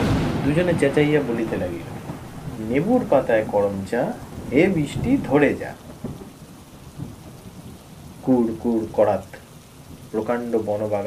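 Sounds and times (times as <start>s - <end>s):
heavy rain hissing: 0.0s - 11.0s
low thunder rumble: 0.0s - 11.0s.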